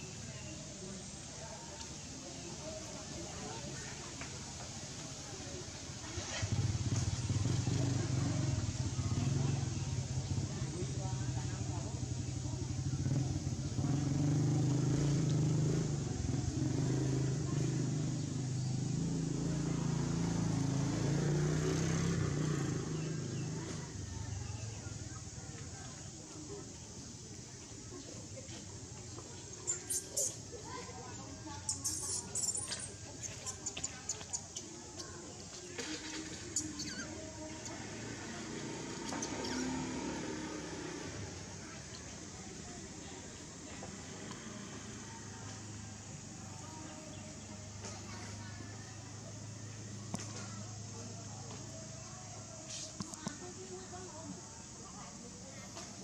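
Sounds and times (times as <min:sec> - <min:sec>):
motorbike engine running: 0:06.0 - 0:56.0
high-pitched animal squeaks: 0:29.7 - 0:30.4, 0:31.7 - 0:33.8, 0:36.6 - 0:37.2, 0:39.1 - 0:39.8.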